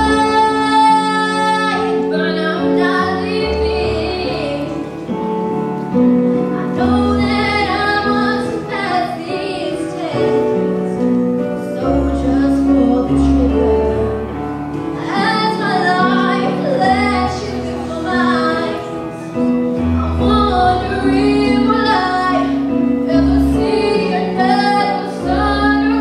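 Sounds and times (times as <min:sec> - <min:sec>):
woman singing a pop ballad: 0:00.0 - 0:04.9, 0:06.5 - 0:10.6, 0:11.6 - 0:14.2, 0:14.9 - 0:19.0, 0:20.3 - 0:26.0
instrumental accompaniment: 0:00.0 - 0:26.0.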